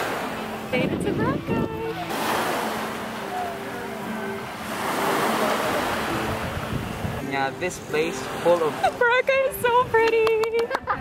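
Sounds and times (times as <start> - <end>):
small waves washing onto sand: 0.0 - 10.3.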